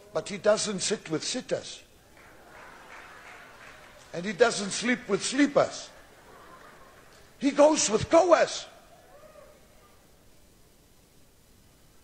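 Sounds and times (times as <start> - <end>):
echo of man's words: 0.0 - 1.9, 4.1 - 6.0, 7.4 - 8.8
low hiss: 0.0 - 12.0.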